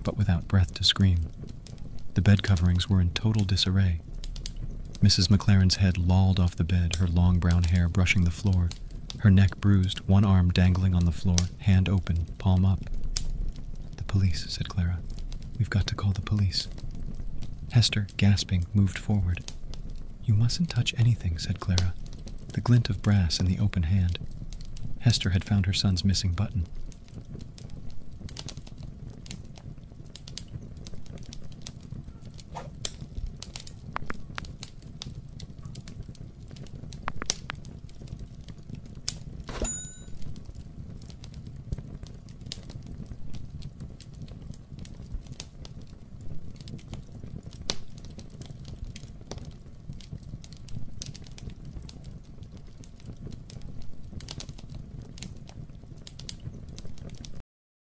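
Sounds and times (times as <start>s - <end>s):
low rumble: 0.0s - 28.2s
crackling clicks: 0.0s - 57.4s
ringing ping: 39.5s - 40.2s.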